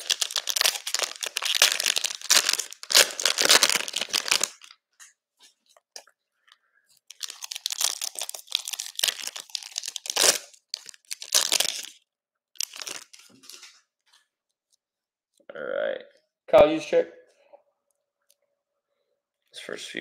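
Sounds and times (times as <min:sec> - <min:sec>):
plastic wrapping crinkling and tearing: 0:00.0 - 0:04.8, 0:07.0 - 0:12.0, 0:12.6 - 0:13.8
sharp plastic crackles: 0:00.0 - 0:04.8, 0:07.0 - 0:12.0, 0:12.6 - 0:13.8.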